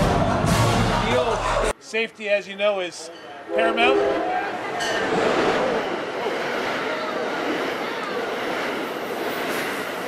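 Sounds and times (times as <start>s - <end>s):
train wheels on rail: 4.8s - 10.0s.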